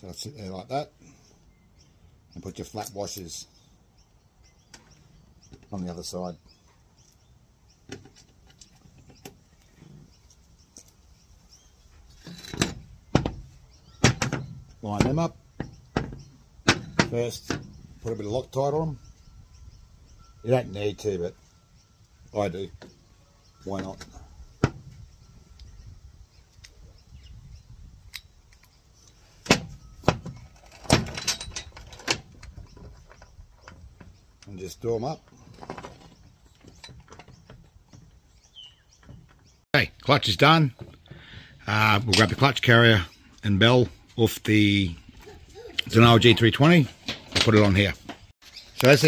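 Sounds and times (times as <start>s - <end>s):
metal engine parts clicking and knocking: 12.2s - 18.3s, 28.1s - 39.6s.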